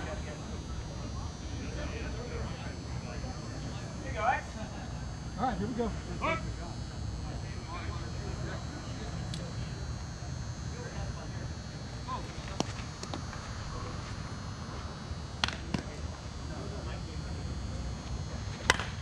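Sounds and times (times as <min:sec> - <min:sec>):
low outdoor background noise: 0:00.0 - 0:19.0
bat hitting ball: 0:18.6 - 0:19.0.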